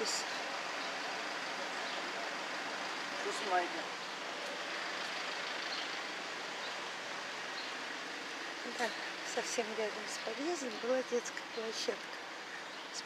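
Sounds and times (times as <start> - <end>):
distant city traffic hum: 0.0 - 13.0.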